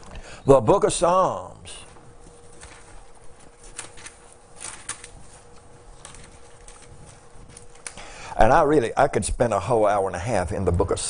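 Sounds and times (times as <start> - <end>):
faint steady hum: 0.0 - 11.0
book pages rustling: 1.8 - 8.0.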